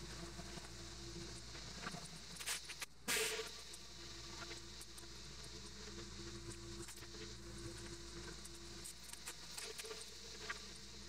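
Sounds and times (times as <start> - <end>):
pressure washer spraying concrete: 3.1 - 3.4.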